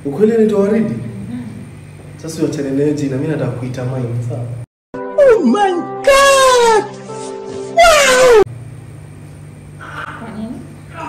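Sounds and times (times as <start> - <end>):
background music: 5.0 - 7.8
man shrieking with laughter: 5.2 - 6.9, 7.8 - 8.5.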